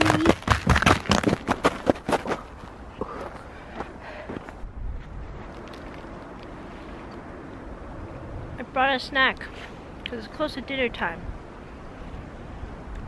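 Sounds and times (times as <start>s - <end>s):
open-air background hiss: 2.0s - 13.0s.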